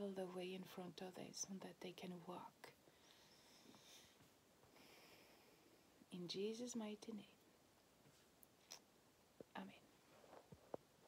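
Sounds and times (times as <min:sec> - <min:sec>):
woman whispering: 0:09.5 - 0:09.9.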